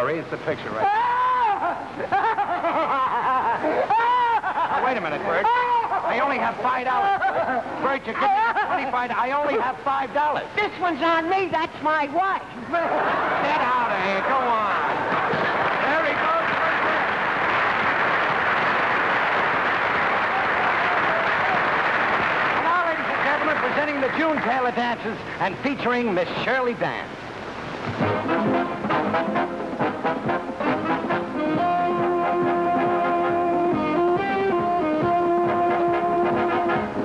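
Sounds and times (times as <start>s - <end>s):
audience applauding: 12.9s - 25.2s
orchestral dance music with brass: 27.9s - 37.0s.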